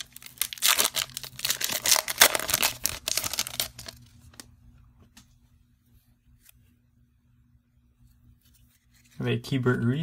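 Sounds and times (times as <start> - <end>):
foil wrapper crackling: 0.0 - 4.4.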